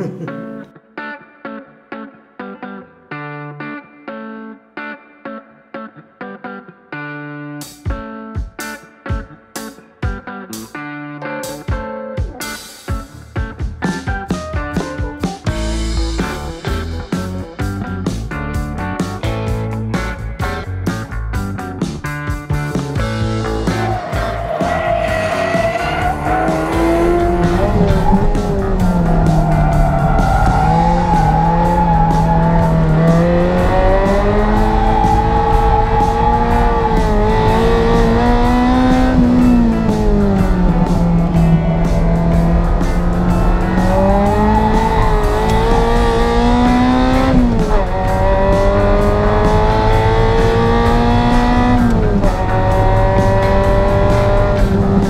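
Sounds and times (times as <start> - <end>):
car engine revving through gears: 23.0 - 55.0.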